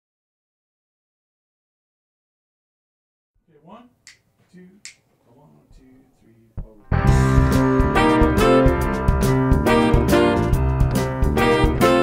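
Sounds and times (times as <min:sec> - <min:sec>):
finger snaps: 0:04.0 - 0:05.1.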